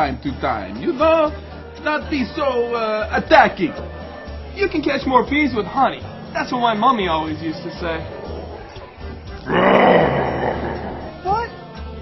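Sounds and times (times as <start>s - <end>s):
background music: 0.0s - 12.0s
man growling grunt: 9.5s - 11.2s.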